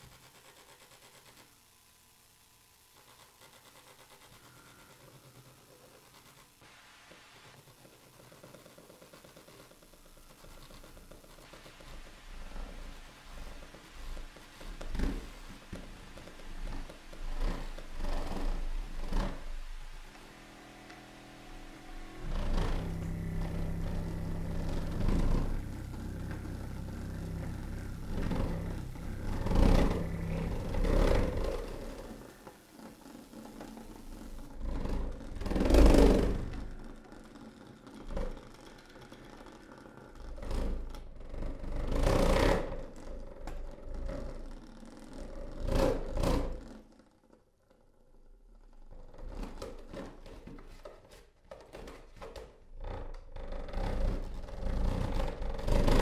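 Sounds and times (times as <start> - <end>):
low steady hum with held tones: 0.0 - 46.6
noisy experimental bursts: 1.1 - 38.8.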